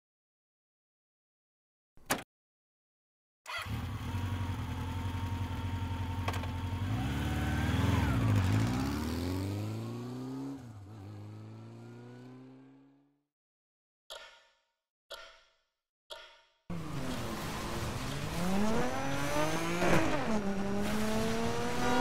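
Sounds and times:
motorcycle engine revving: 3.5s - 13.1s, 16.7s - 22.0s
clock ticking: 15.1s - 15.5s, 16.1s - 16.4s.

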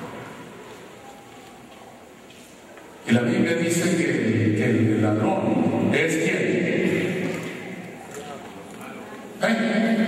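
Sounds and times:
man's voice over loudspeakers: 3.0s - 10.0s.

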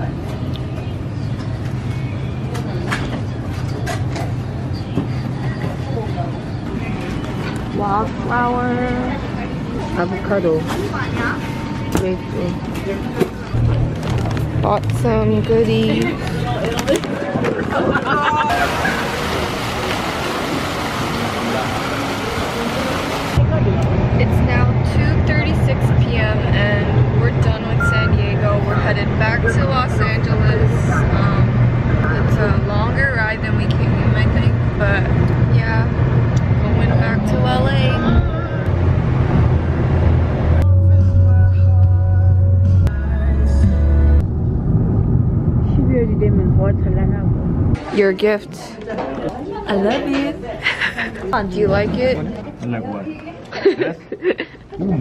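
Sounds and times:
water splashing from fountain: 18.5s - 23.4s
music with steady bass line: 40.6s - 44.2s.

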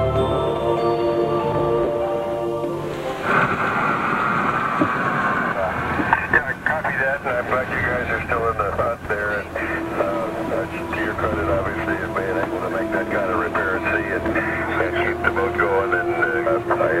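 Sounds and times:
indistinct voices: 0.0s - 17.0s.

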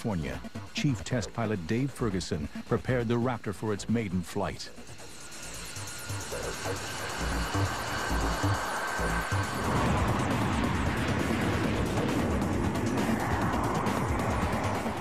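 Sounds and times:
music: 0.0s - 15.0s
rushing jet engine noise: 0.0s - 15.0s
thin high whine: 0.0s - 15.0s.

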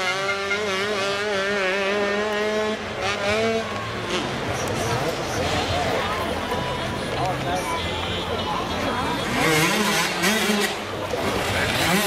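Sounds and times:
motorcycle engine revving: 0.0s - 6.2s, 8.6s - 12.0s
spectators chattering: 0.0s - 12.0s.

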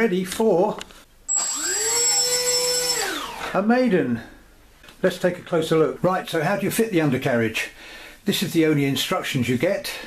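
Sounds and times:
electric motor and propeller whine: 1.3s - 3.5s.

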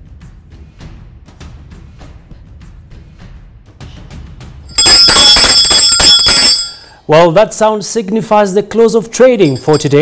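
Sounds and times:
hand bell ringing: 4.7s - 7.0s, 9.4s - 10.0s.

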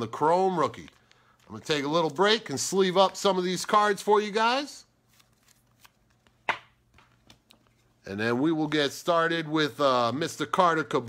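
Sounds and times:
card swishing into sleeve: 5.0s - 7.5s.

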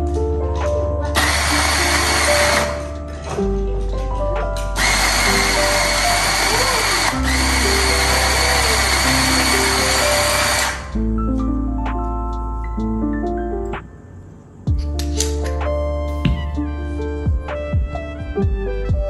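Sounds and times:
electric coffee grinder grinding: 1.2s - 2.8s, 4.8s - 10.9s.

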